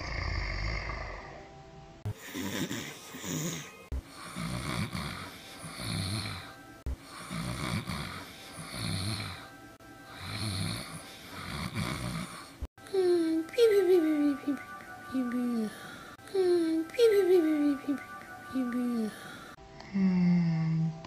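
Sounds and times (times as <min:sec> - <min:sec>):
person snoring: 0:00.0 - 0:01.5, 0:02.1 - 0:13.1, 0:19.0 - 0:20.9.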